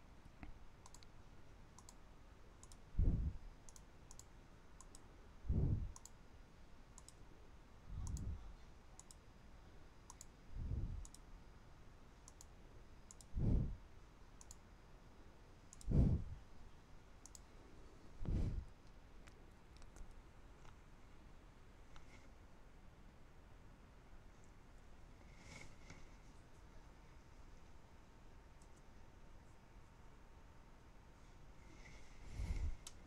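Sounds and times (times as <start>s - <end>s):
computer mouse clicking: 0.4s - 2.0s, 2.6s - 3.0s, 3.6s - 5.1s, 5.8s - 6.2s, 6.9s - 7.2s, 8.0s - 8.4s, 9.0s - 9.2s, 10.1s - 11.3s, 12.2s - 13.4s, 14.4s - 14.6s, 15.7s - 16.0s, 17.2s - 17.5s, 18.8s - 20.8s, 28.6s - 28.9s
soft low thumps: 3.0s - 3.4s, 5.5s - 6.0s, 10.6s - 11.1s, 13.4s - 13.8s, 15.9s - 16.4s, 18.2s - 18.7s.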